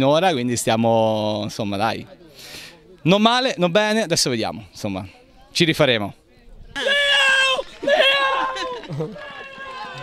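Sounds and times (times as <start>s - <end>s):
young man cheering yell: 6.8s - 10.0s.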